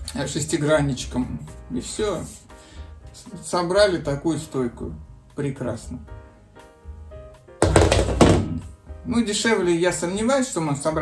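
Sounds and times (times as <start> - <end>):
metal stand thunk on floor: 7.6 - 8.5.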